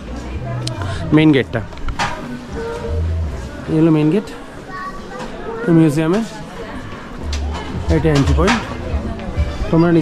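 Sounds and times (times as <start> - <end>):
man talking: 7.8 - 8.6.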